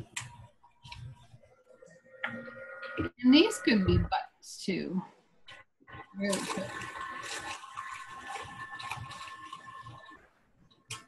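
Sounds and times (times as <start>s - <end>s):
water running and splashing: 6.0s - 11.0s.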